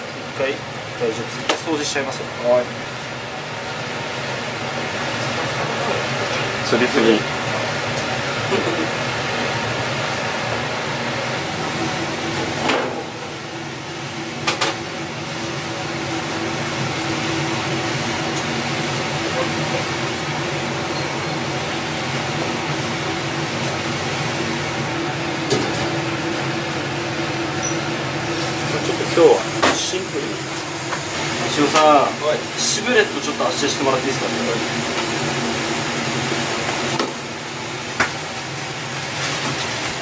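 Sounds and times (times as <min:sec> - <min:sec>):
kitchen ventilation hum: 0:00.0 - 0:40.0.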